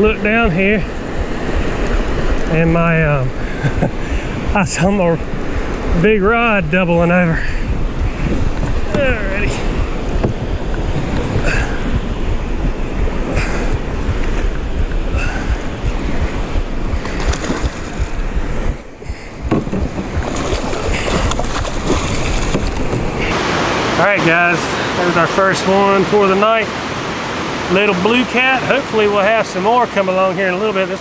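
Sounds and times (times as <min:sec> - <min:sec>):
wind buffeting microphone: 0:00.0 - 0:28.7
river current rushing: 0:00.0 - 0:31.0.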